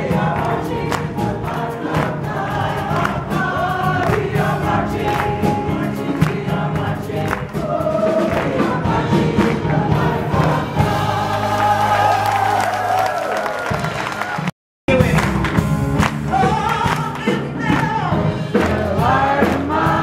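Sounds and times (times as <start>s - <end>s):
choir singing gospel song: 0.0s - 13.9s, 16.3s - 20.0s
hand claps: 15.0s - 18.0s.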